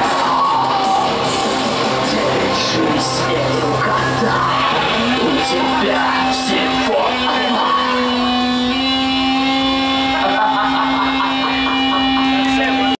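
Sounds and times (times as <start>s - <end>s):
crowd voices and shouts: 0.0s - 13.0s
held electronic tone: 1.1s - 13.0s.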